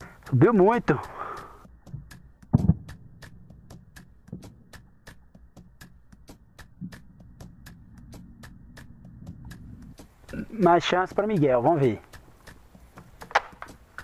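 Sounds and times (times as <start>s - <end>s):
fast steady ticking: 0.0s - 14.0s.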